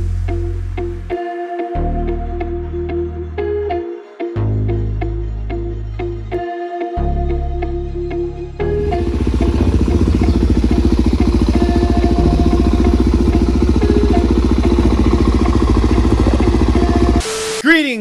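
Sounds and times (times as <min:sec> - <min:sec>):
background music: 0:00.0 - 0:18.0
motorcycle engine running: 0:08.7 - 0:17.2.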